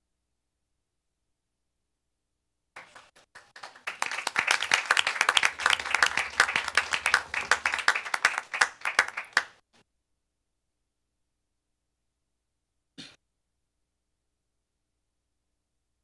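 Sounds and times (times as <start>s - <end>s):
people applauding: 2.8s - 9.6s.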